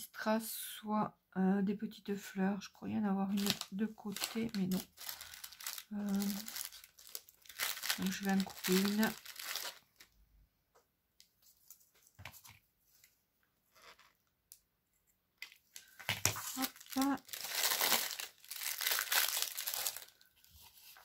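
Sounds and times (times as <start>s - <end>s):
fabric and packaging crinkling: 3.3s - 10.2s, 15.5s - 21.0s.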